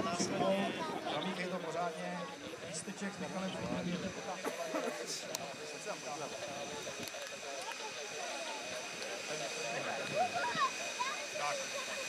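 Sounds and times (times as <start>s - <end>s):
jet engine high whine: 0.0s - 12.0s
people talking: 0.0s - 12.0s.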